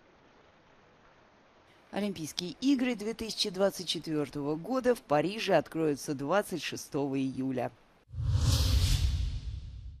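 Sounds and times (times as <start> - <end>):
deep rumble: 8.1 - 10.0
synthetic whoosh: 8.1 - 10.0.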